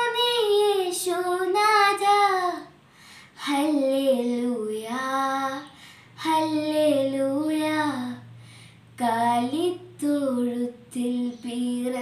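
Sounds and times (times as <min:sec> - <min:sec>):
girl singing a carol: 0:00.0 - 0:12.0.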